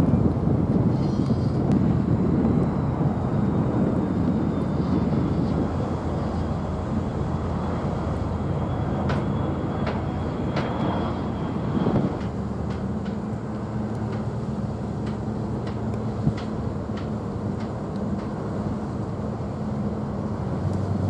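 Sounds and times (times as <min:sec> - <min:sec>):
ship diesel engines rumbling: 0:00.0 - 0:21.0.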